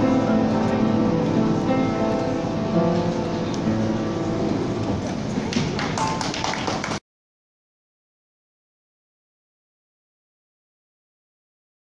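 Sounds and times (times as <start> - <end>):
piano ballad: 0.0 - 6.4
sharp taps or claps: 5.5 - 7.0.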